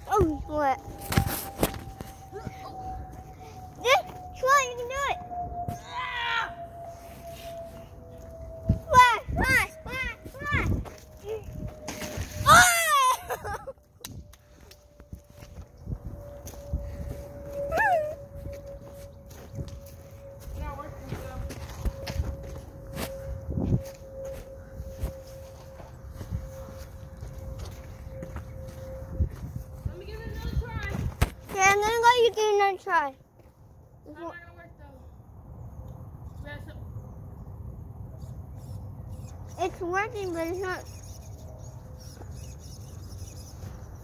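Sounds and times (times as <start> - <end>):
child calling: 0.0 - 0.8, 3.8 - 5.2, 8.8 - 11.5, 12.4 - 13.7, 17.7 - 18.2
footsteps: 0.0 - 5.0, 6.8 - 12.5, 14.1 - 32.5.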